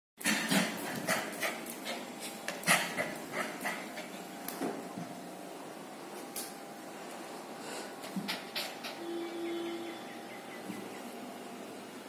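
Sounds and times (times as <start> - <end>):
puppy making breathy sounds: 8.0 - 9.1.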